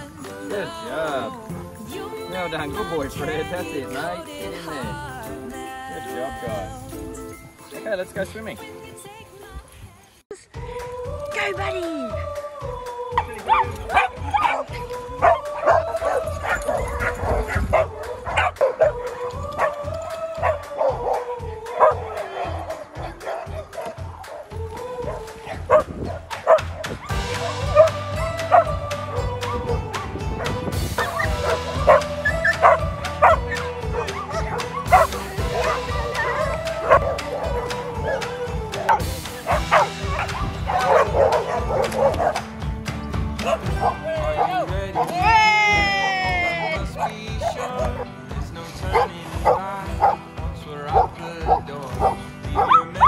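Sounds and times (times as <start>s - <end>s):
background music: 0.0s - 53.0s
dogs barking: 13.1s - 42.6s, 43.4s - 45.4s, 46.4s - 53.0s.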